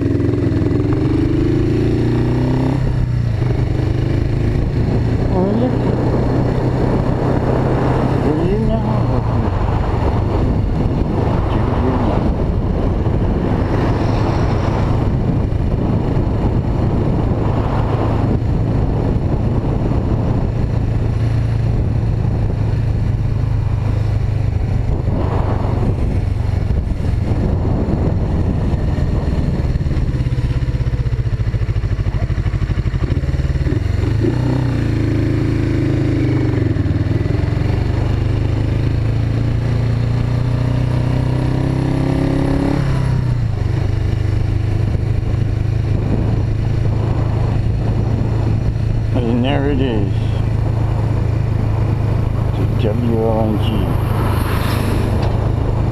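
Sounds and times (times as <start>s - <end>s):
motorcycle engine running: 0.0s - 55.9s.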